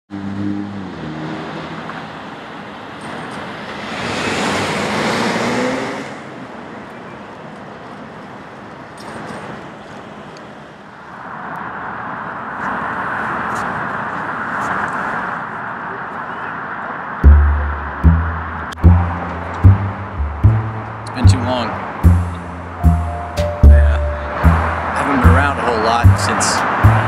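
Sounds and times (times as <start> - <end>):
car passing: 0.1 - 6.7, 17.0 - 27.0
road noise: 0.1 - 27.0
car engine running low: 17.2 - 27.0.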